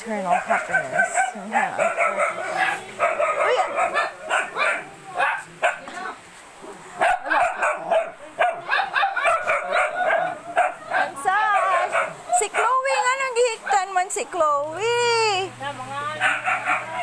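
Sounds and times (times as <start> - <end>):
dogs barking and yipping: 0.1 - 6.2, 6.9 - 14.6, 16.0 - 17.0
dog whining: 0.8 - 4.8.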